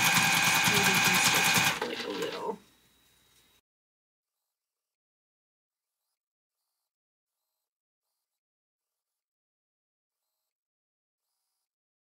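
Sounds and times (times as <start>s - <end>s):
electric sewing machine stitching: 0.0s - 2.6s.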